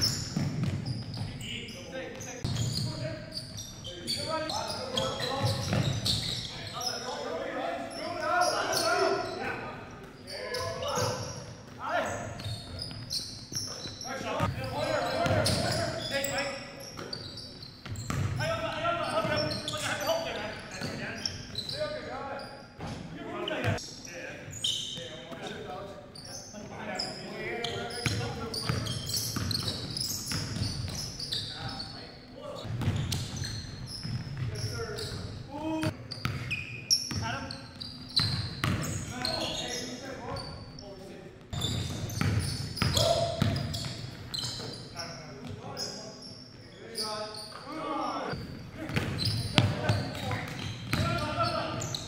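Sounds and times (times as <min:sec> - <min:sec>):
basketball bouncing on wood floor: 0:00.0 - 0:01.3, 0:05.4 - 0:06.1, 0:17.8 - 0:18.4, 0:32.7 - 0:33.4, 0:41.7 - 0:44.0, 0:48.9 - 0:51.2
sneakers squeaking: 0:00.0 - 0:52.0.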